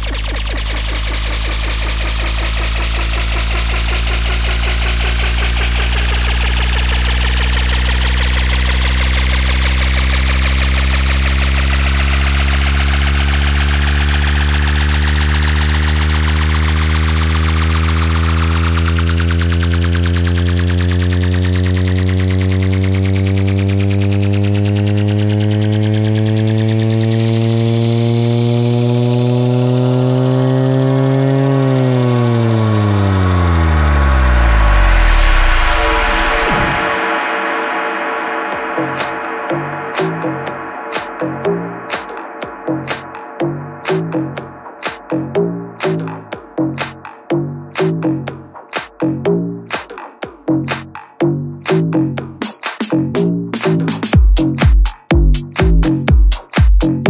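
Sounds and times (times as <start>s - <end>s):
synthesizer drone: 0.0s - 49.8s.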